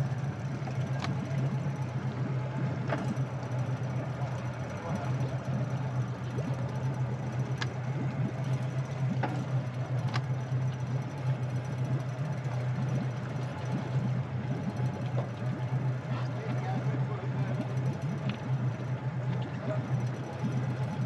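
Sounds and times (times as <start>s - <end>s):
outboard engine idling: 0.0s - 21.0s.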